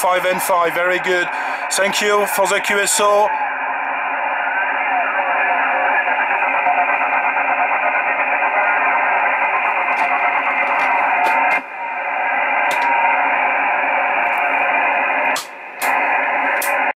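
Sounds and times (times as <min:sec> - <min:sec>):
radio receiver hiss: 0:00.0 - 0:17.0.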